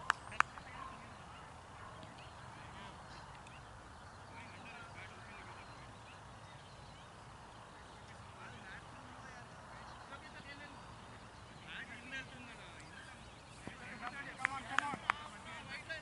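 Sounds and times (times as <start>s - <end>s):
quiet outdoor ambience: 0.0s - 16.0s.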